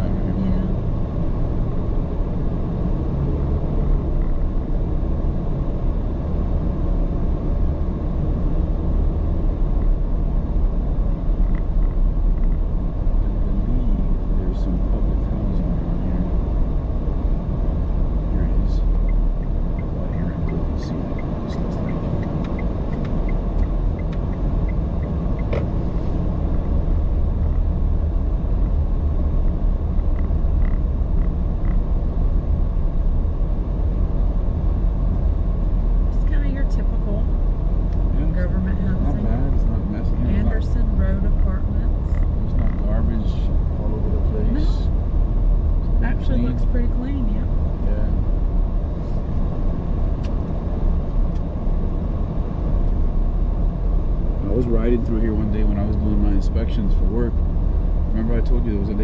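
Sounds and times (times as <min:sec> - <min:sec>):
car engine and tyre rumble: 0:00.0 - 0:59.0
light evenly spaced ticks: 0:18.9 - 0:25.5.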